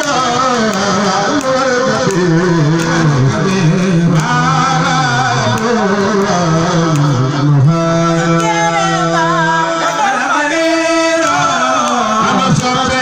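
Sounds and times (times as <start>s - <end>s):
man chanting into a microphone: 0.0s - 13.0s.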